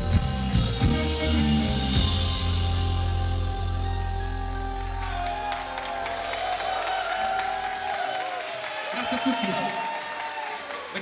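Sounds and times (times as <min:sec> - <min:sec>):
live band final chord: 0:00.0 - 0:07.0
audience clapping and cheering: 0:03.8 - 0:11.0.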